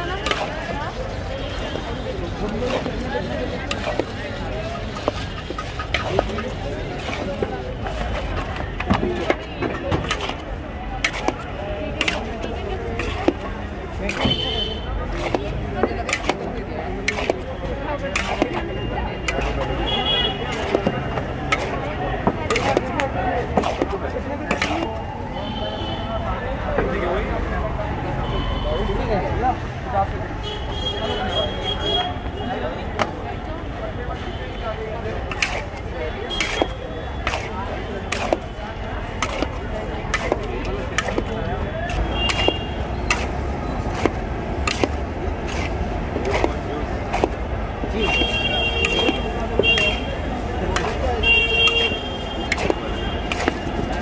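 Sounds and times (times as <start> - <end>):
metal utensils scraping metal pan: 0.0 - 0.9, 1.5 - 17.4, 18.0 - 19.7, 20.4 - 21.8, 22.5 - 22.9, 35.3 - 54.0
street noise: 0.0 - 54.0.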